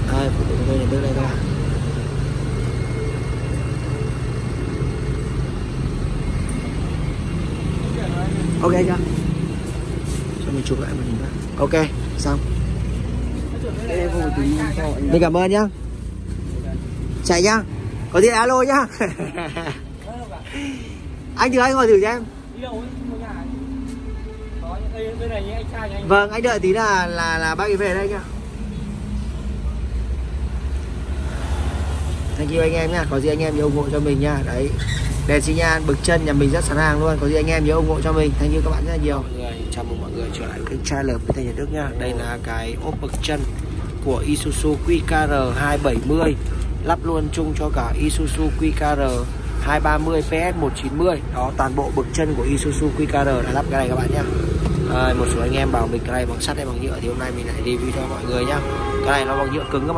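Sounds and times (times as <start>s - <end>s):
truck engine rumbling: 0.0s - 59.9s.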